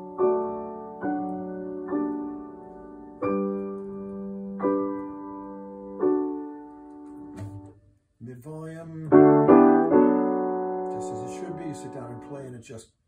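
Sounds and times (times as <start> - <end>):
grand piano chords: 0.0 - 7.8, 8.7 - 12.6.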